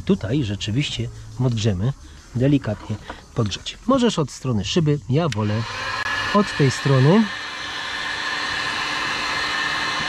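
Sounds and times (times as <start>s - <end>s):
heat gun blowing with a whine: 5.3s - 10.0s.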